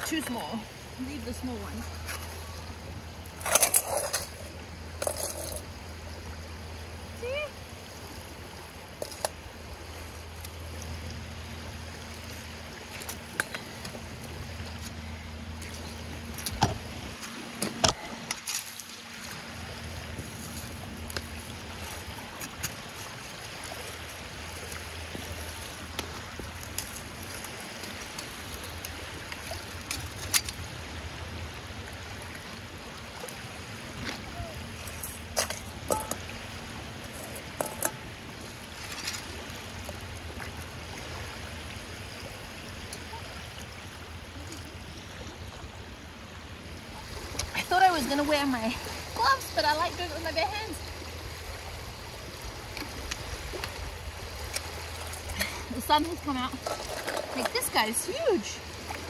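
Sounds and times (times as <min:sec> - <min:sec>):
water lapping at shoreline: 0:00.0 - 0:59.0
steady low rumble: 0:00.6 - 0:42.6
metal spade digging gravel: 0:03.4 - 0:05.7, 0:34.9 - 0:36.2.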